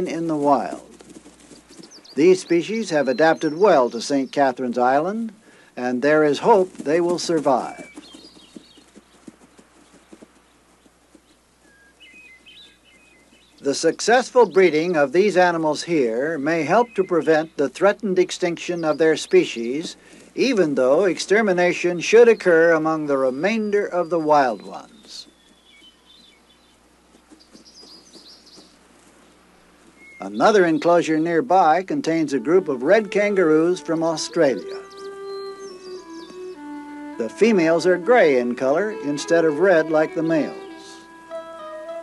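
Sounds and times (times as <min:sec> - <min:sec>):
bird chirping: 0:00.0 - 0:42.0
hoofbeats on grass: 0:00.0 - 0:42.0.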